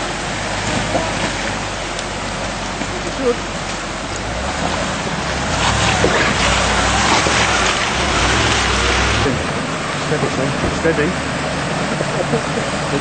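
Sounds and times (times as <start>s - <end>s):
vehicle engine pulling under load: 0.0s - 13.0s
water rushing and splashing: 0.0s - 13.0s.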